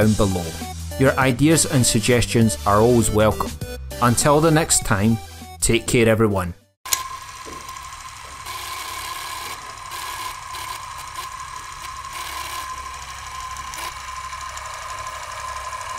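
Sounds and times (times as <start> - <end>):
film projector rattle and whir: 6.9 - 15.9
projector whine: 6.9 - 15.9.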